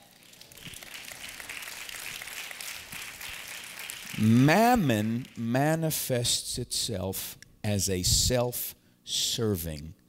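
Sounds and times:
congregation applauding: 0.0s - 5.5s.

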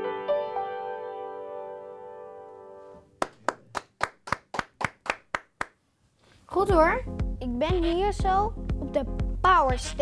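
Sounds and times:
person clapping: 3.2s - 5.8s.

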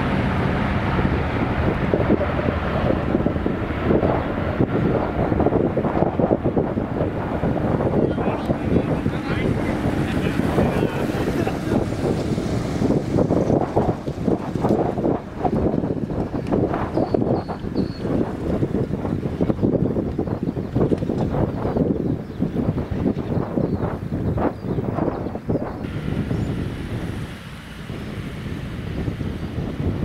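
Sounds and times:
jet engines roaring at takeoff: 0.0s - 30.0s
wind on microphone: 0.0s - 30.0s.

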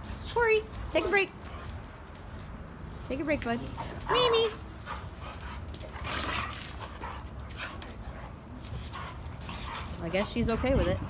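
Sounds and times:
dogs scuffling: 0.1s - 11.0s
breathy dog noises: 3.8s - 11.0s.

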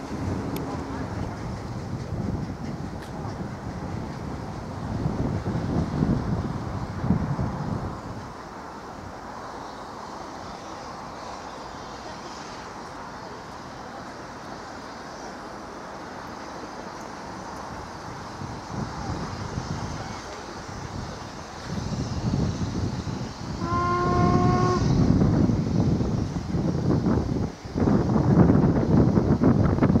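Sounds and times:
steam locomotive exhaust: 0.0s - 30.0s
steam whistle blast: 23.5s - 25.2s.

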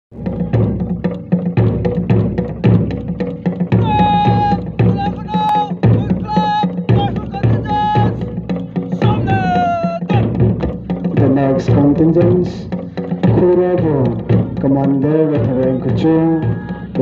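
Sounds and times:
march drumbeat: 0.1s - 17.0s.

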